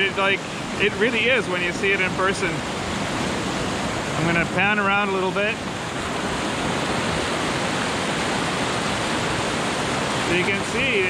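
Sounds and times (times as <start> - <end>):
water rushing over rocks: 0.0 - 11.0.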